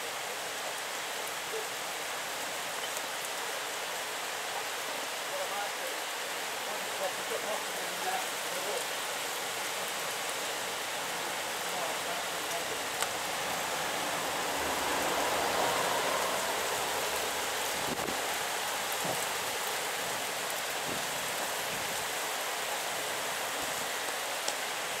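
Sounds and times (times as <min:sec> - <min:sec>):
heavy rain pouring: 0:00.0 - 0:25.0.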